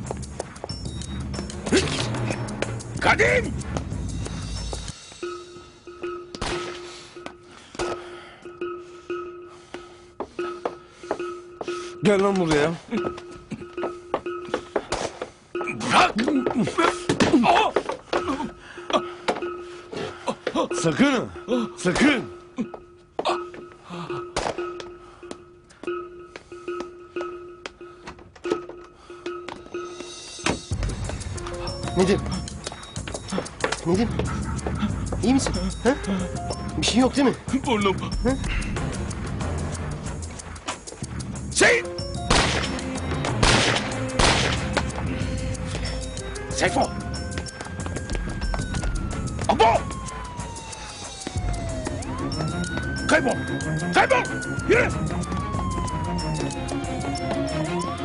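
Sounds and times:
sharp percussive ticks: 30.8s - 41.4s
police siren wailing: 31.4s - 38.7s, 44.0s - 58.0s.

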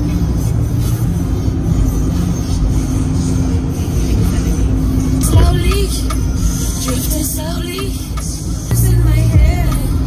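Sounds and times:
car cabin rumble: 0.0s - 10.0s
steady low hum: 0.0s - 10.0s.

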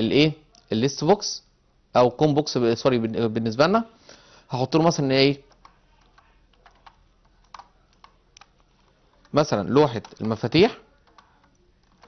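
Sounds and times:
computer keyboard keystrokes: 5.4s - 12.0s.

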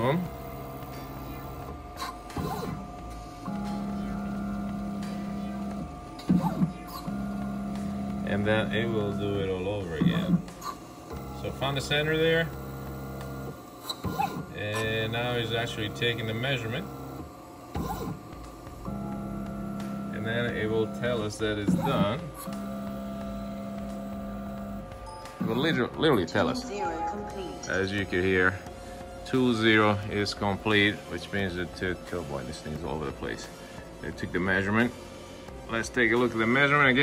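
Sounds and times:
short machine sounds: 0.0s - 33.4s
milling machine motor whine: 0.0s - 37.0s.

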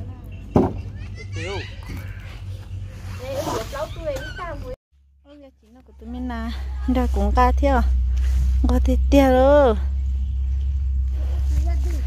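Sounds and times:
steady low hum: 5.0s - 12.0s
child's voice: 11.5s - 12.0s.

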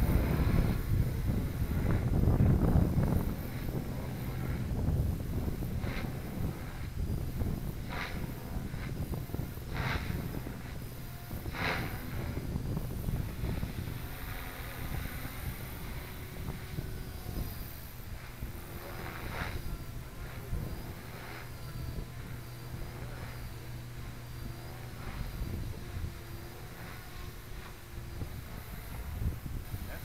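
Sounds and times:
rc helicopter rotor whine: 0.0s - 30.0s
wind rumble on microphone: 0.0s - 30.0s.

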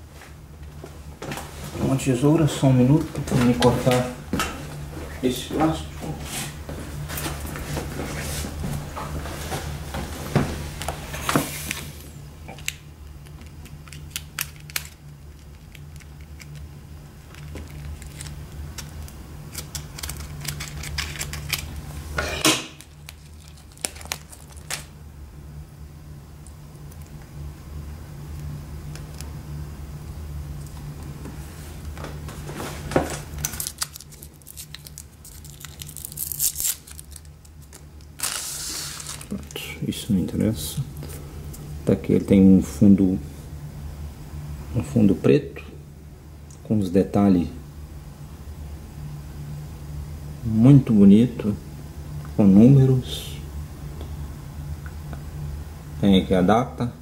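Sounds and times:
steady low hum: 0.0s - 57.0s
scissors cutting plastic: 12.6s - 21.8s, 22.8s - 24.9s, 33.4s - 39.4s
plastic wrapping crinkling: 13.1s - 21.9s, 22.7s - 24.9s, 33.1s - 39.7s.

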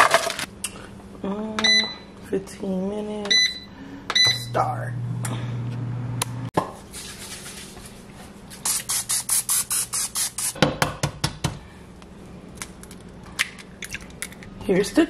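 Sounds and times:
air fryer fan humming: 0.0s - 8.6s
short hissing bursts: 8.6s - 10.6s.

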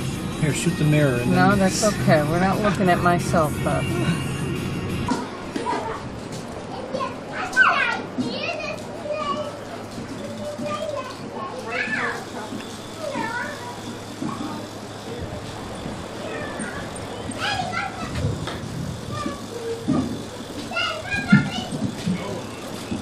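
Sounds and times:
steady background noise: 0.0s - 23.0s
young children calling and babbling: 3.8s - 23.0s.

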